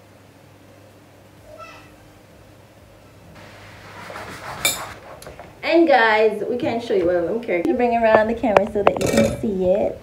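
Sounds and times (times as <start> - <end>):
kitchen handling noise: 4.1 - 5.6, 8.0 - 9.8
woman speaking: 5.6 - 10.0.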